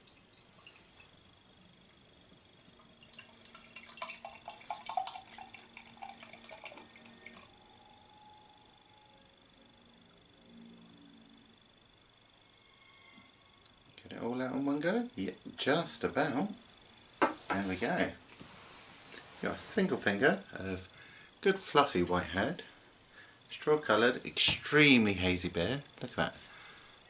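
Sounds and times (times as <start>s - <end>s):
beer pouring and foaming in glass: 2.8s - 7.5s.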